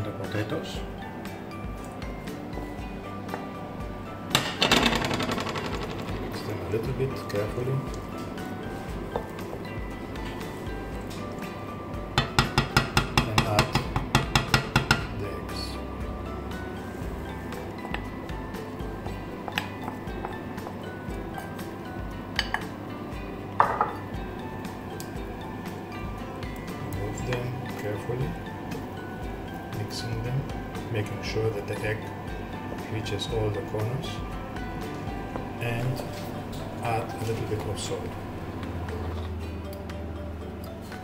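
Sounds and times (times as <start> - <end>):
soft background music: 0.0 - 41.0
utensils knocking on bowl: 4.3 - 6.5, 12.2 - 15.2, 23.6 - 24.0.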